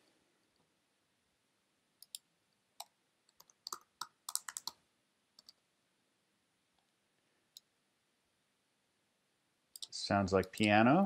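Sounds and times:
laptop keyboard typing: 2.8s - 4.8s, 5.4s - 5.6s.

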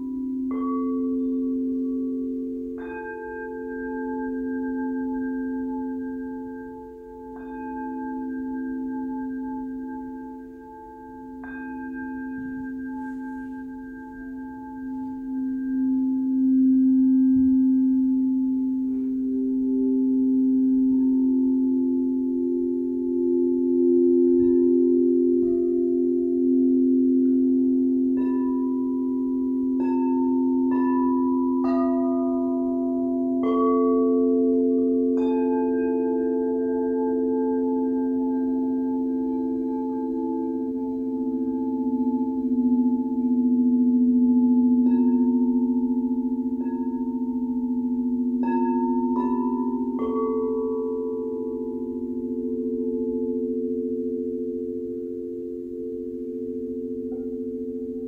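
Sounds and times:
crystal singing bowls ringing: 0.0s - 58.0s
singing bowl strikes: 0.0s - 58.0s.

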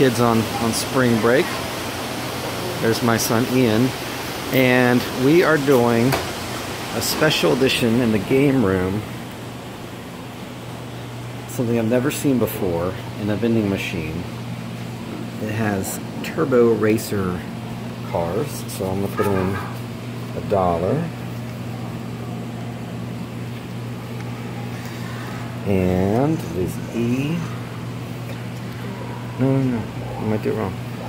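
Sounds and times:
machinery low hum: 0.0s - 31.0s.

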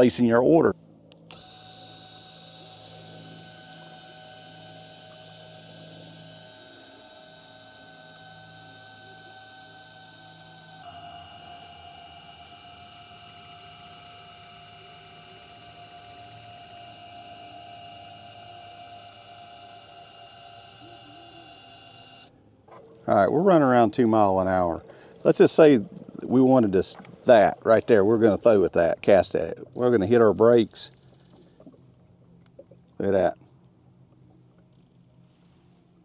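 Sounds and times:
electric motor whine: 1.1s - 22.3s.

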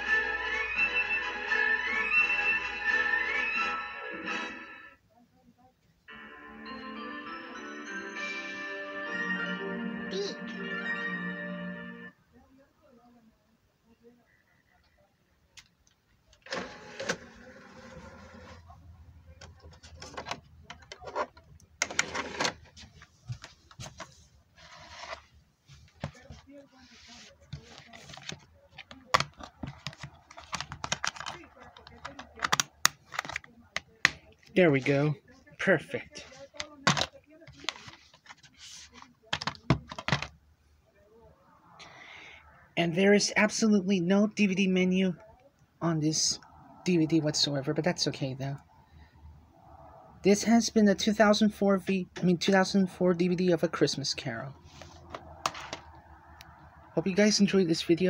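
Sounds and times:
film score music on television: 0.0s - 5.0s, 6.0s - 12.4s
plastic case clicks and rustles: 27.6s - 34.2s, 36.5s - 38.5s, 39.3s - 40.4s, 55.1s - 55.9s.

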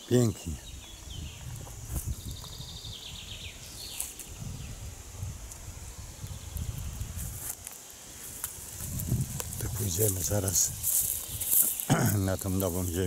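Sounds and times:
high insect hum: 0.0s - 13.0s
songbird chirping: 0.0s - 13.0s.

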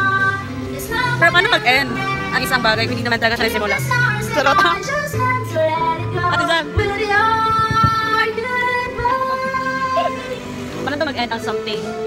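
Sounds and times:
backing music: 0.0s - 12.0s
woman singing into microphone: 0.0s - 12.0s.

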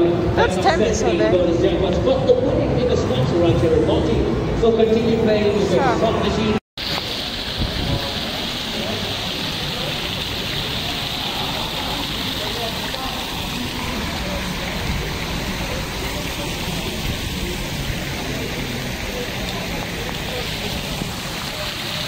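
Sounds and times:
fountain water splashing: 6.8s - 22.0s.

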